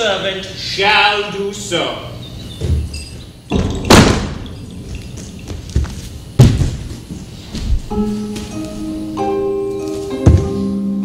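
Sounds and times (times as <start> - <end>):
thumps of performers on stage: 3.5 - 4.5, 5.2 - 7.8, 10.2 - 10.7.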